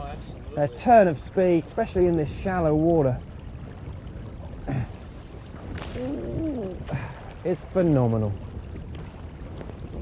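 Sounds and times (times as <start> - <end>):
shallow river water: 0.0 - 10.0.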